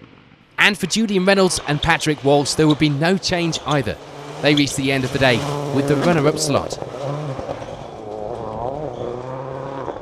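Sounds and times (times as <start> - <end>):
distant rally car engine: 0.6 - 10.0.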